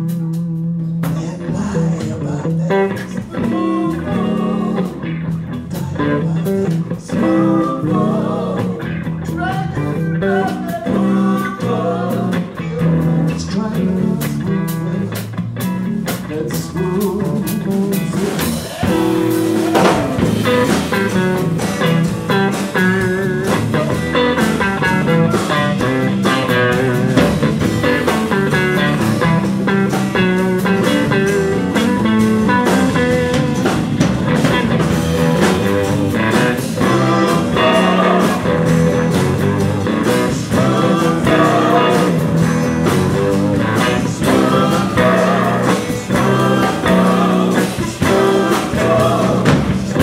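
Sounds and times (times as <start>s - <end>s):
bass guitar: 0.0s - 50.0s
drums: 0.0s - 50.0s
electric lead guitar: 0.0s - 50.0s.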